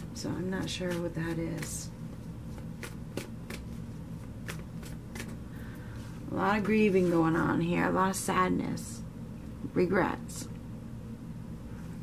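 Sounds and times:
low room hum: 0.0 - 12.0
cards being shuffled: 2.5 - 5.4.

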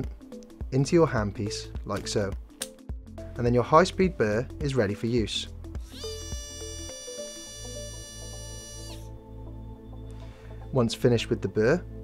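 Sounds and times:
high-pitched drill whine: 5.8 - 9.1.

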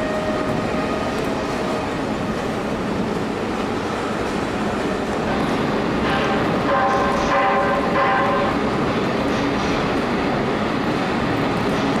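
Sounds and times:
factory machinery noise: 0.0 - 12.0.

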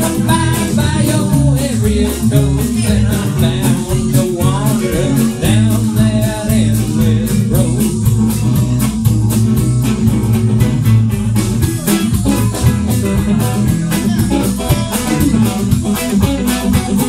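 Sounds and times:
live band playing: 0.0 - 17.0
resonator guitar: 0.0 - 17.0.

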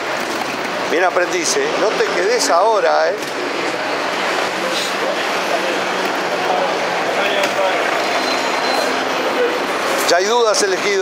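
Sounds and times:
street background noise: 0.0 - 11.0
indistinct voices talking: 0.7 - 11.0.

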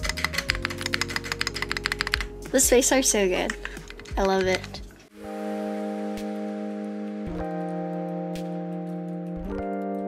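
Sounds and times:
mechanical keyboard clacking: 0.0 - 2.3, 3.4 - 4.8
background music: 0.0 - 10.0.

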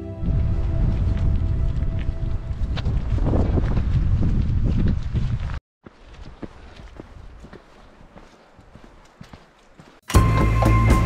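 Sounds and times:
footsteps: 0.5 - 10.7.

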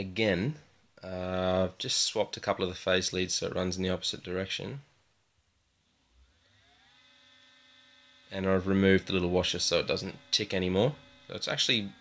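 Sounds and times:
electric motor whine spinning up: 5.8 - 12.0.

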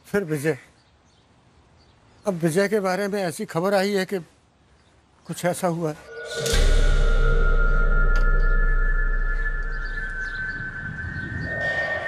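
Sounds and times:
high music drone: 6.0 - 12.0
low rumbling noise: 6.0 - 12.0.

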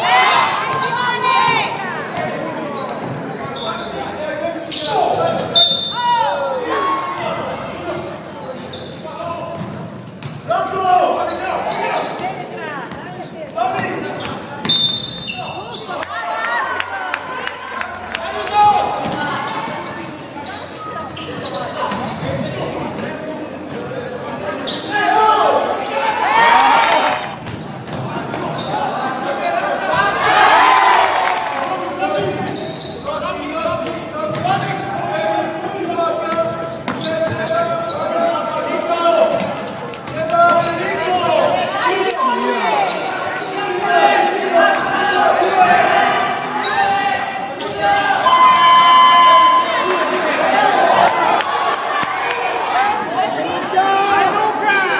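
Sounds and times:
crowd noise: 0.0 - 54.9
voices echoing: 0.0 - 54.9
basketball bouncing on indoor court: 8.8 - 10.5, 18.9 - 20.0, 27.4 - 28.7, 33.6 - 34.9.

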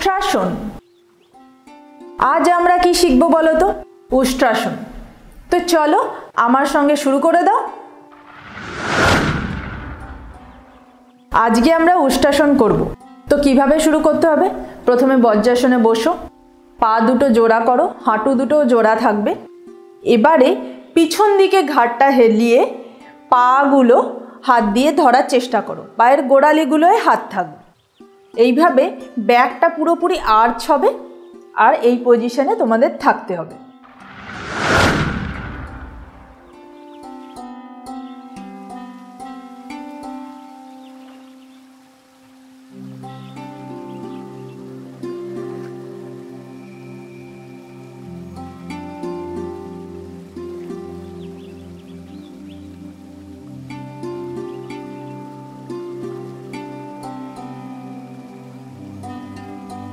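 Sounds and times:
deep boom with whoosh: 8.2 - 10.8, 33.9 - 36.5
soft plucked-string music: 42.8 - 59.9.

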